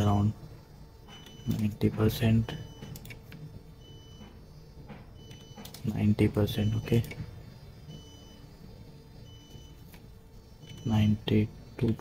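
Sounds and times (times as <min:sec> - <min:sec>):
steady low hum: 0:00.0 - 0:12.0
man speaking: 0:01.5 - 0:02.6, 0:05.8 - 0:07.2, 0:10.8 - 0:12.0
computer keyboard keystrokes: 0:05.2 - 0:05.9.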